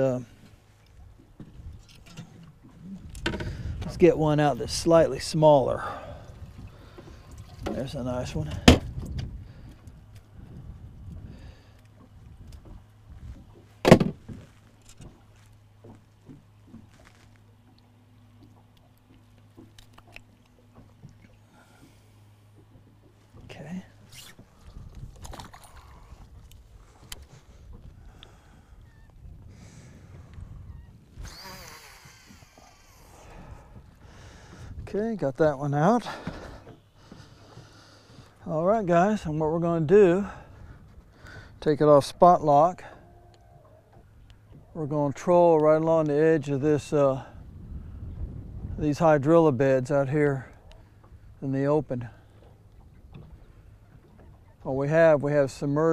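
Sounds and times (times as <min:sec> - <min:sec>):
water noise: 0:00.0 - 0:55.9
wind: 0:00.0 - 0:55.9.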